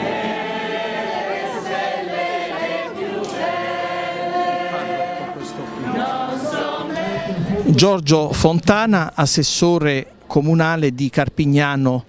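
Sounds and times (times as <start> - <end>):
crowd singing a slow hymn: 0.0 - 7.8.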